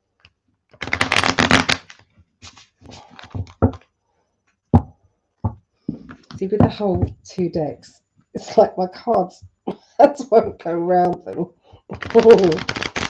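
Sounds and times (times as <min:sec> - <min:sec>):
cards riffle shuffling: 0:00.8 - 0:03.8, 0:11.0 - 0:13.0
card stacks knocking: 0:02.9 - 0:03.8, 0:05.5 - 0:07.3.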